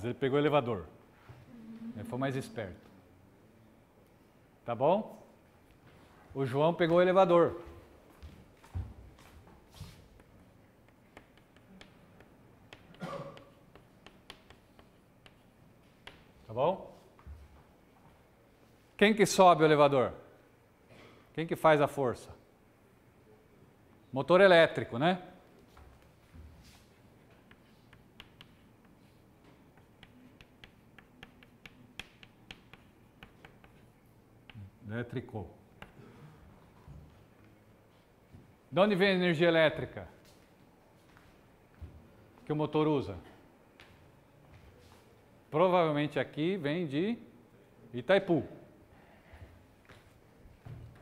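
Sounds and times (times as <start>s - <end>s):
footsteps on hard floor: 7.6s - 10.1s, 40.2s - 42.1s, 49.8s - 51.0s
chalk tapping on blackboard: 10.2s - 16.3s, 27.3s - 34.7s, 35.8s - 36.0s.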